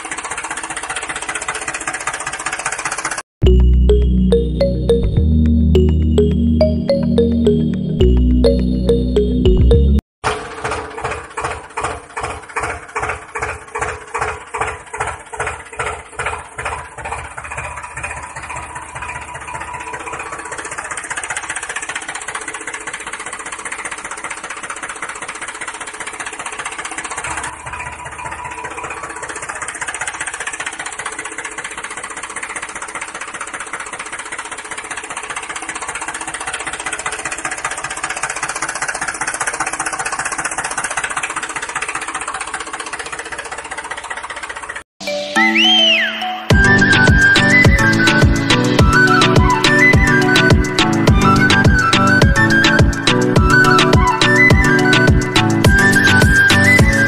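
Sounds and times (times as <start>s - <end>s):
tractor engine chugging: 0.0s - 5.0s, 5.8s - 44.8s, 46.5s - 57.0s.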